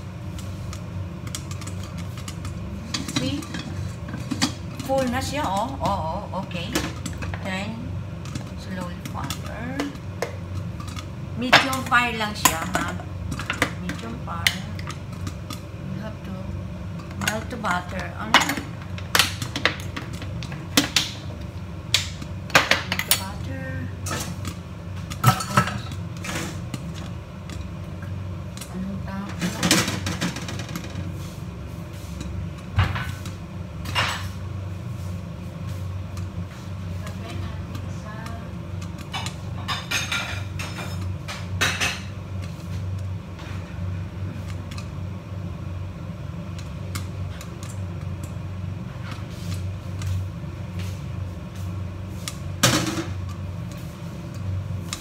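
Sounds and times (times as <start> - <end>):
popcorn popping in a pan: 0.0 - 55.0
steady low hum: 0.0 - 55.0.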